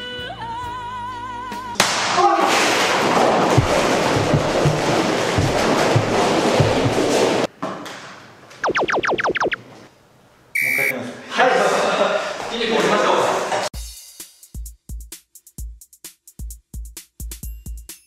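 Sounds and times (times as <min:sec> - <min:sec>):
rubber balls bouncing on floor: 0:03.5 - 0:07.5
falling whistle notes: 0:10.6 - 0:10.9.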